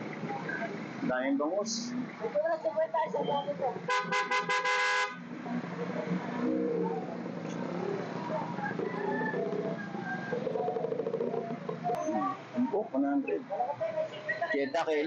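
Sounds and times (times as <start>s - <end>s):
vehicle horn short toots: 3.9s - 5.2s
background voices: 5.2s - 14.6s.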